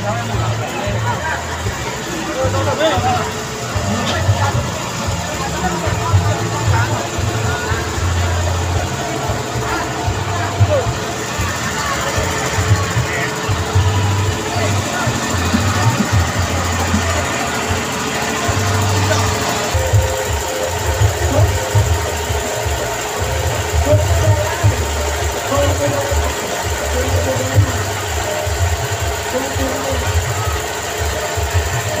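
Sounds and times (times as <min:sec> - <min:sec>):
crowd chatter: 0:00.0 - 0:32.0
loud music with pulsing bass: 0:00.0 - 0:32.0.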